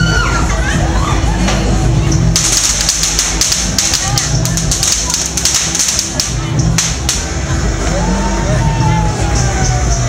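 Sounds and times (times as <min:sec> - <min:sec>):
crowd voices: 0:00.0 - 0:10.0
loud music with bass beat: 0:00.0 - 0:10.0
small fireworks popping: 0:02.2 - 0:07.5.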